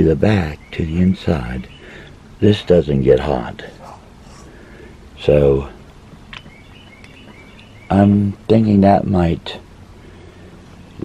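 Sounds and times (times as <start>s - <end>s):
faint bird chirps: 0.3s - 2.2s, 3.7s - 8.4s.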